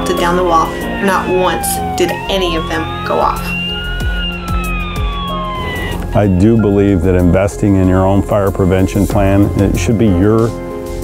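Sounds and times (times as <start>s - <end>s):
emergency siren wailing: 0.0s - 8.2s
music with low sustained notes: 0.0s - 11.0s.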